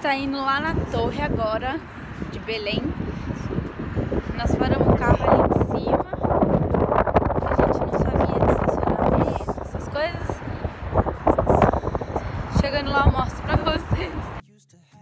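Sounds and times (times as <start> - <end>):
woman talking: 0.0 - 3.0, 4.3 - 6.4, 7.4 - 10.6, 12.5 - 14.4
wind buffeting microphone: 0.0 - 14.4.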